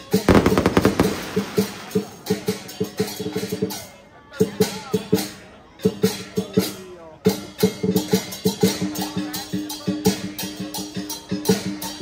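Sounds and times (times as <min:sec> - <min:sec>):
drum beating quick rhythm: 0:00.2 - 0:03.2
rapid sharp cracks: 0:00.3 - 0:02.2.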